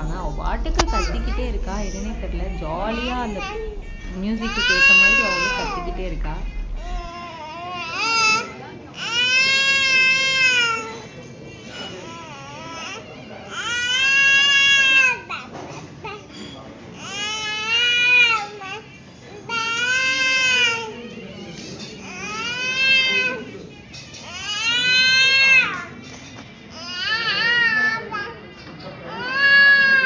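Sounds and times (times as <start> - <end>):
baby wailing: 0.0 - 11.0, 29.1 - 30.0.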